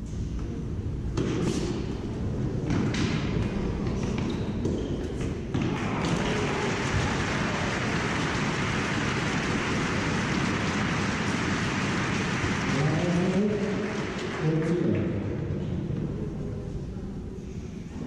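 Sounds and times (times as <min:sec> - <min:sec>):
crowd applauding: 0:05.6 - 0:15.0.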